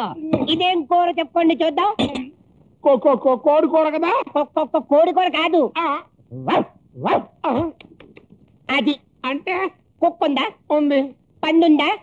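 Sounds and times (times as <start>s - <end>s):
dog barks sweeping up in pitch: 6.4s - 7.4s.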